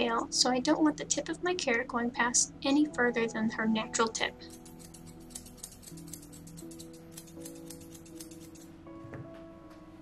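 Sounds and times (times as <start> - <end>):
background music: 0.0 - 10.0
shears snipping hair: 4.0 - 8.7.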